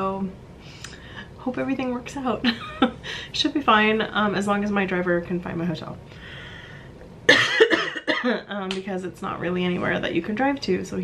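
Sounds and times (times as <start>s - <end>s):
woman coughing: 7.3s - 8.5s.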